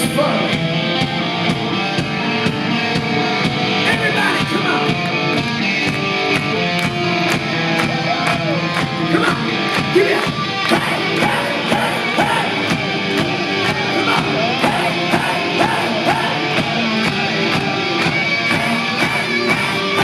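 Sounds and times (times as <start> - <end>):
electric guitar: 0.0 - 20.0
steady drum beat: 0.0 - 20.0.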